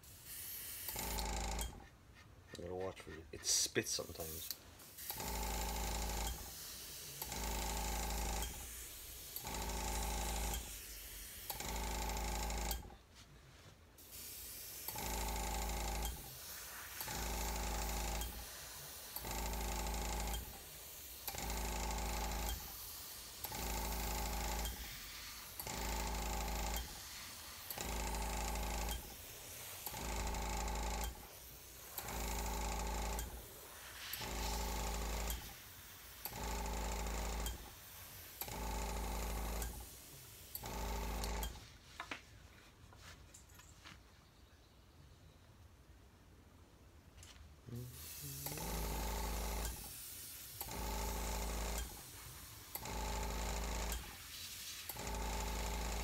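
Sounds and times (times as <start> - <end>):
airbrush spraying bursts: 0.0 - 1.9, 3.1 - 12.7, 14.0 - 42.0, 47.7 - 56.0
air compressor humming: 0.0 - 2.0, 2.8 - 13.0, 14.0 - 42.0, 47.7 - 56.0.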